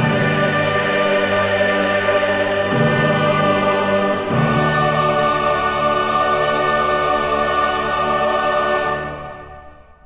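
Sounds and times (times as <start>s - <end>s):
choir singing with orchestra: 0.0s - 10.0s.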